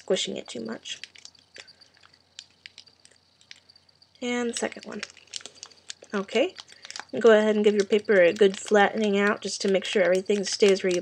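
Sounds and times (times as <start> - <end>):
small paper clicks: 0.9 - 3.7, 4.5 - 11.0
thin paper crinkling: 4.5 - 11.0.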